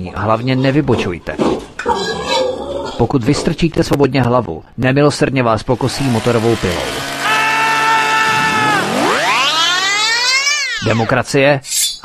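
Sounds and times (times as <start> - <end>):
chainsaw engine revving: 5.6 - 10.8.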